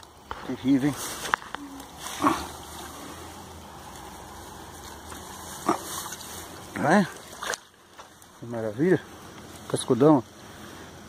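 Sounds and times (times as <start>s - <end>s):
low outdoor background: 0.0s - 11.0s.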